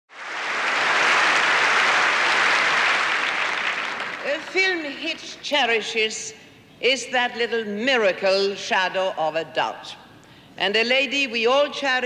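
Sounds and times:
audience applause: 0.1s - 4.3s.

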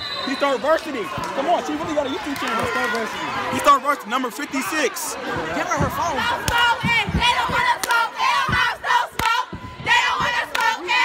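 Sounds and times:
girls shouting a chant: 5.3s - 11.0s
sharp claps: 6.4s - 6.7s, 7.8s - 8.0s, 9.1s - 9.4s, 10.4s - 10.8s.

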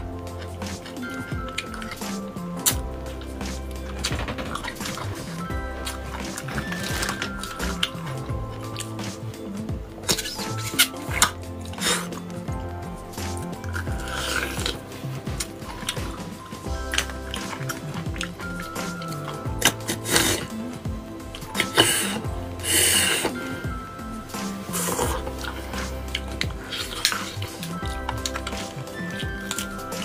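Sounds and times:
background music with held notes: 0.0s - 30.0s
wet slurps: 6.2s - 12.4s, 13.2s - 20.6s, 21.4s - 23.6s, 24.4s - 30.0s.

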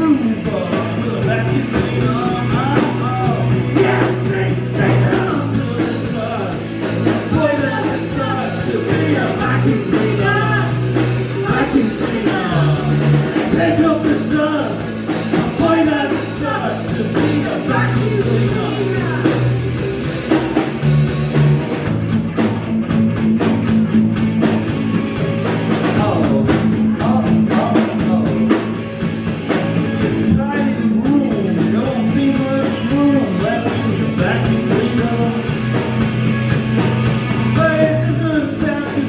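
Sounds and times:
bass guitar notes: 0.0s - 39.0s
drum kit beat: 0.0s - 39.0s
electric guitar: 0.0s - 39.0s.

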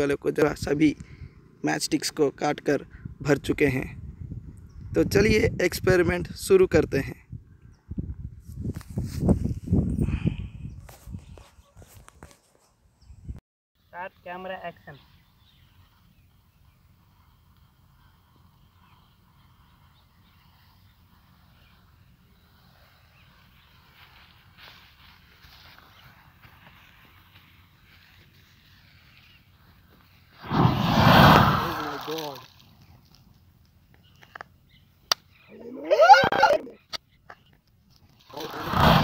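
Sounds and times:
loud rushing burst: 30.4s - 32.1s, 38.5s - 39.0s.

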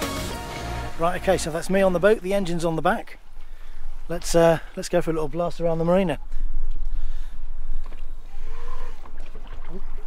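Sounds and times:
rumble of wind and water: 0.5s - 10.0s.

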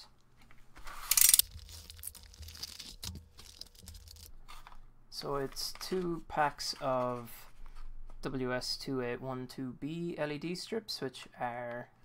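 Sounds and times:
envelope ripping open: 1.0s - 4.8s
plastic packs crinkling: 1.0s - 4.8s.

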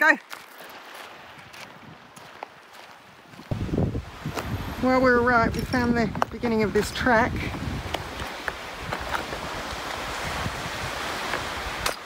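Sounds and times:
wind buffeting microphone: 3.2s - 11.9s.

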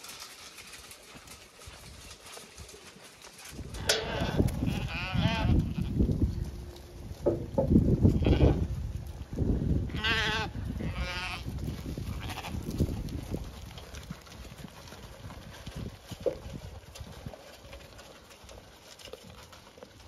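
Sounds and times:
sheep bleating: 3.8s - 6.0s, 8.1s - 8.6s, 9.9s - 11.5s
flock thumping and shuffling: 7.2s - 7.8s.

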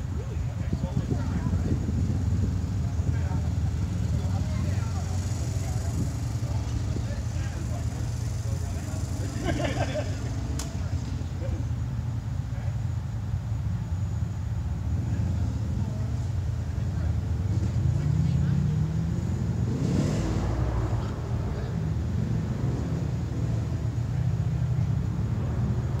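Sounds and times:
utility vehicle engine revving: 0.6s - 12.0s, 14.6s - 26.0s.

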